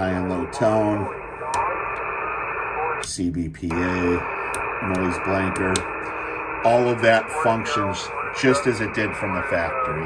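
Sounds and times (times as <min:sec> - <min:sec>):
faint garbled radio voices: 0:00.0 - 0:10.0
radio static hiss: 0:00.0 - 0:10.0.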